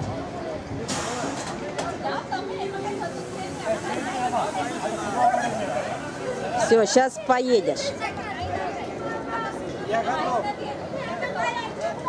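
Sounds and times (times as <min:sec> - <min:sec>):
people chattering: 0:00.0 - 0:12.0
short hiss: 0:00.9 - 0:01.6.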